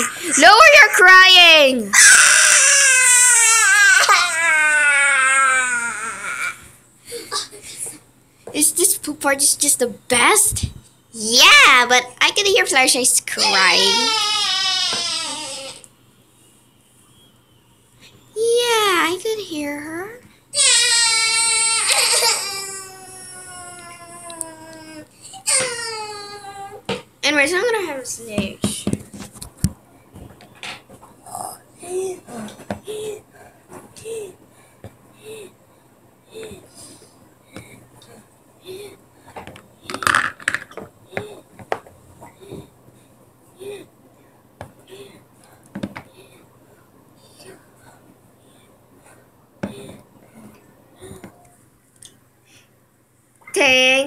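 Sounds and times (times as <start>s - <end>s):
child wailing: 1.9s - 6.6s, 13.4s - 15.8s, 20.6s - 26.8s.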